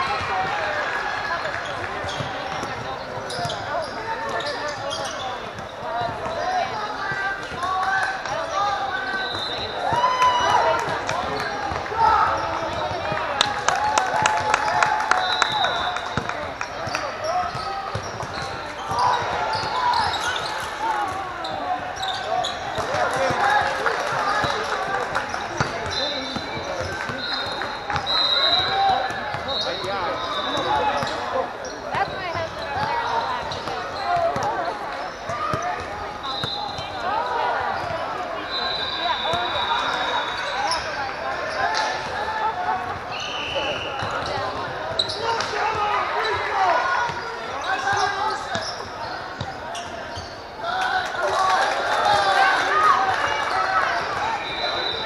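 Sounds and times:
chatter and calls of crowd: 0.0s - 55.0s
sneakers squeaking: 1.1s - 13.5s, 14.8s - 23.4s, 24.2s - 50.9s, 53.0s - 55.0s
basketball bouncing on court: 2.0s - 3.7s, 15.5s - 20.5s.

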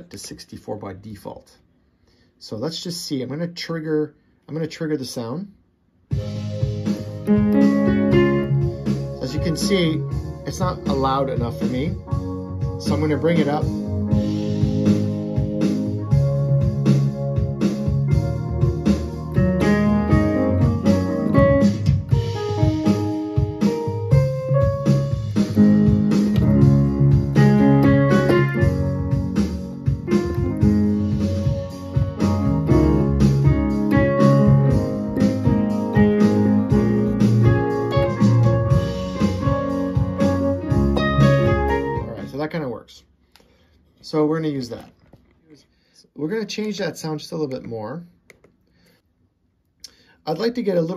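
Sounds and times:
backing track with beat and keyboards: 6.1s - 42.4s.

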